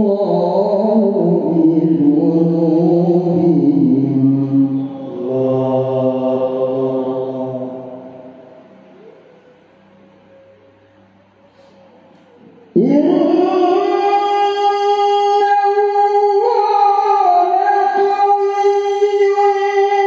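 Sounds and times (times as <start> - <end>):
man chanting melodically: 0.0 - 9.4, 12.4 - 20.0.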